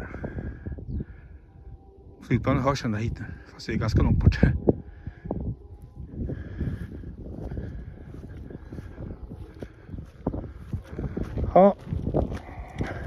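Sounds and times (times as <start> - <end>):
distant jet airliner rumble: 0.0 - 13.0
wind buffeting microphone: 0.0 - 13.0.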